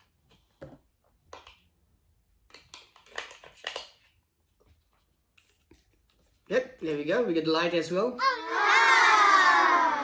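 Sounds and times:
plastic clicks and rattles: 2.5 - 4.0.

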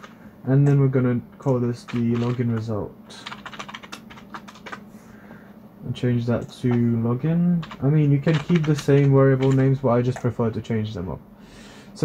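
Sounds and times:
computer keyboard typing: 0.0 - 4.8, 6.3 - 7.0, 7.6 - 10.4.

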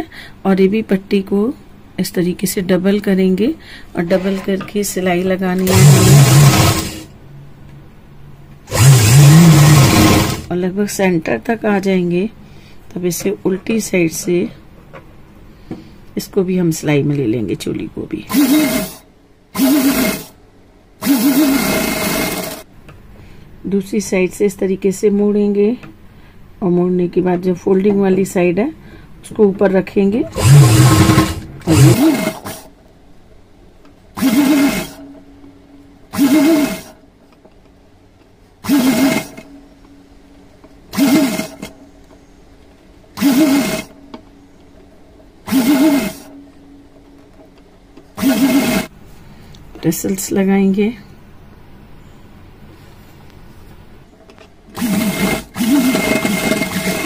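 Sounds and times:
sewing machine stitching: 5.6 - 7.1, 8.7 - 10.5, 18.3 - 19.0, 19.6 - 20.4, 21.0 - 22.6, 30.3 - 32.7, 34.2 - 35.0, 36.2 - 36.9, 38.6 - 39.5, 40.9 - 41.7, 43.2 - 44.0, 45.5 - 46.3, 48.2 - 48.9, 54.7 - 57.0.

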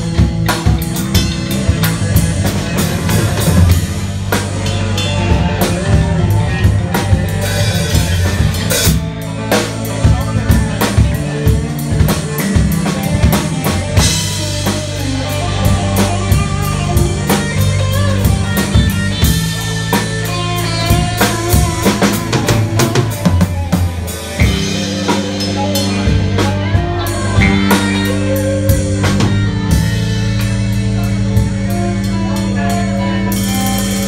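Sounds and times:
bass notes: 0.0 - 34.0
drum kit: 0.0 - 34.0
electric guitar: 0.0 - 34.0.

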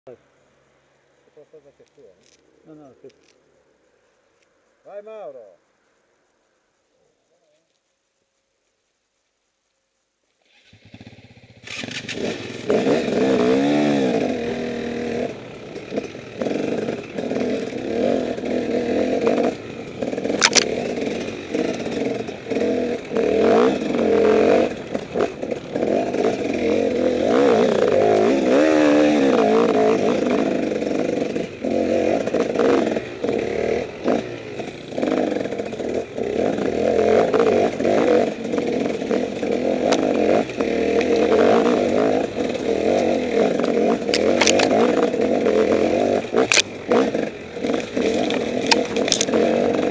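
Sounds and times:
motorcycle engine revving: 10.4 - 49.9
motorcycle rattling over rocks: 10.5 - 49.9.

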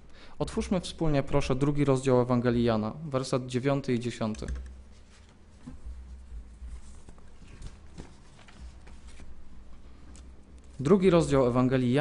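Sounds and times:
paper sheets handled: 5.0 - 10.8.

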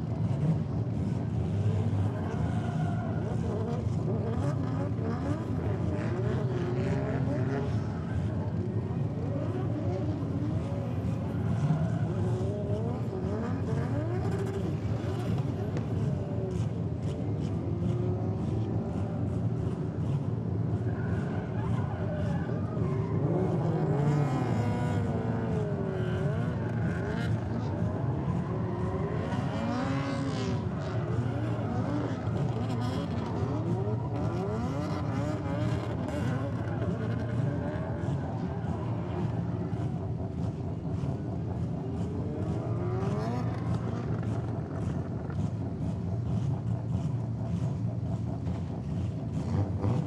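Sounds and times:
steady low drone: 37.5 - 49.8.

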